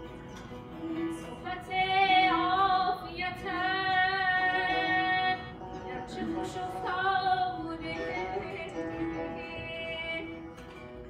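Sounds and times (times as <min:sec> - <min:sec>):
woman singing classical vocal: 0:00.8 - 0:10.6.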